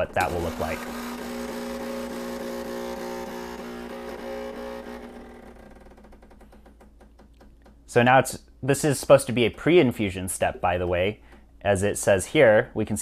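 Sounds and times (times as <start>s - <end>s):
espresso machine pump humming: 0.0s - 5.8s
rapid pump pulsing: 0.0s - 7.2s.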